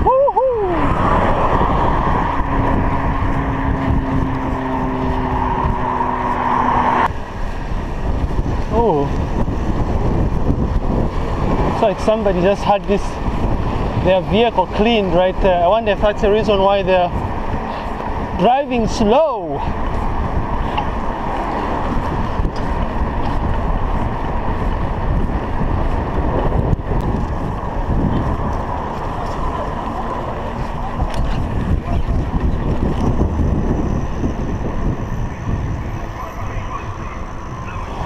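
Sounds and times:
wind rushing on microphone: 0.0s - 38.0s.

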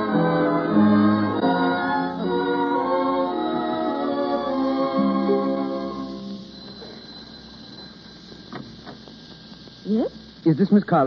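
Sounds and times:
recording hiss and hum: 0.0s - 11.0s.

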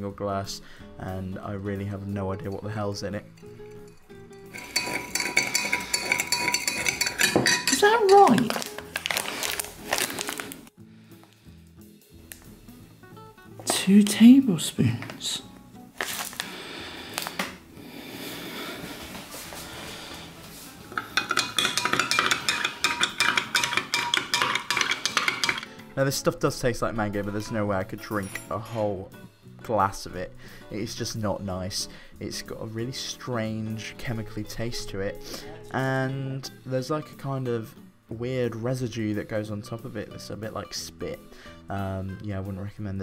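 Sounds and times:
spoon clinking against glass: 3.4s - 8.7s, 21.0s - 25.7s.

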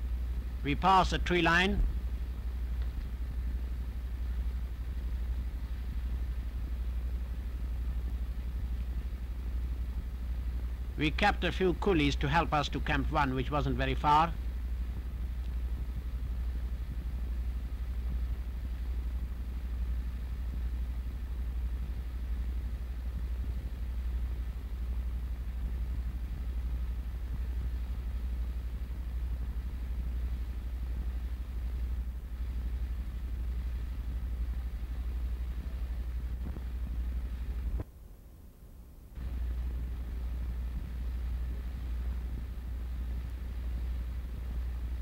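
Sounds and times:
faint hiss: 0.0s - 45.0s
low electrical hum: 0.0s - 45.0s.

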